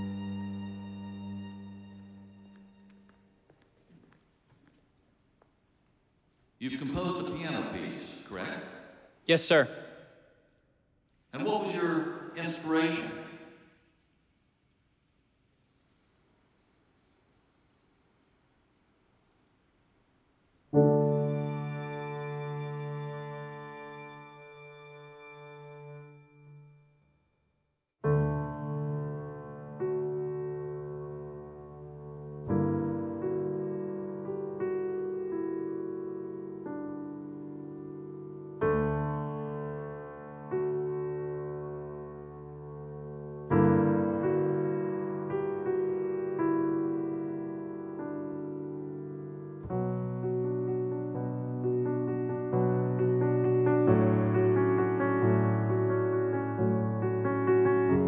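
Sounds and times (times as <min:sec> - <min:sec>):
slow gentle piano music: 0:00.0 - 0:03.5, 0:20.7 - 0:26.8, 0:28.0 - 0:58.0
piano chord sustaining: 0:20.8 - 0:26.8.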